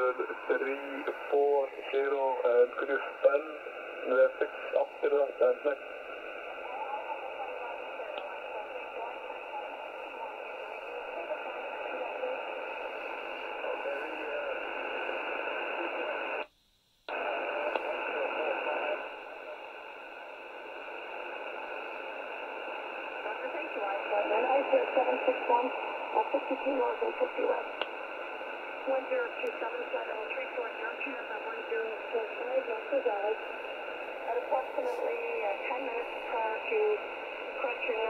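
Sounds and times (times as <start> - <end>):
radio static hiss: 0.0 - 38.0.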